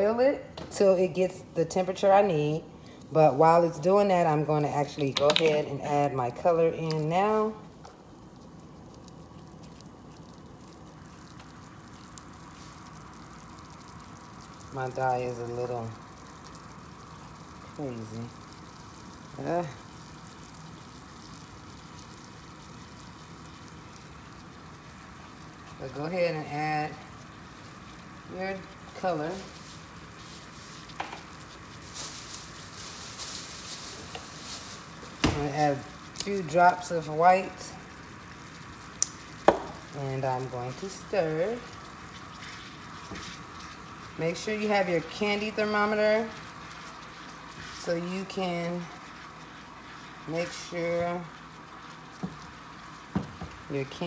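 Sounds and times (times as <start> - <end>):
syrup sizzling and bubbling: 0.0 - 54.0
small pops: 7.7 - 15.0, 30.8 - 32.5, 38.4 - 40.0.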